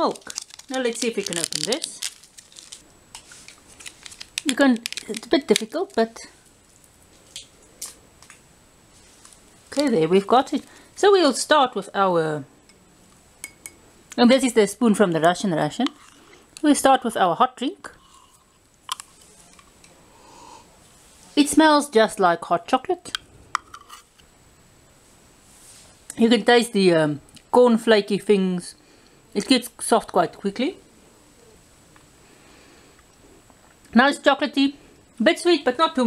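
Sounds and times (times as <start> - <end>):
packet crinkling: 0.0 - 8.3.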